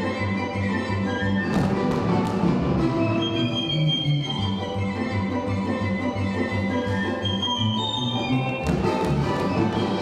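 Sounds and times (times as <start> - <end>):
lively folk dance music: 0.0 - 10.0.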